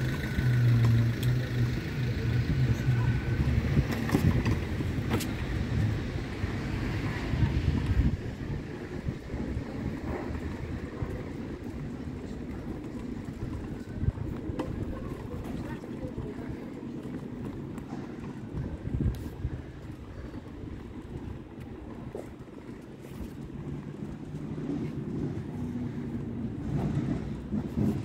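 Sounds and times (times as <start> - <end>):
distant traffic: 0.0 - 28.0
faint voices: 0.0 - 28.0
wind rumble on microphone: 2.1 - 28.0.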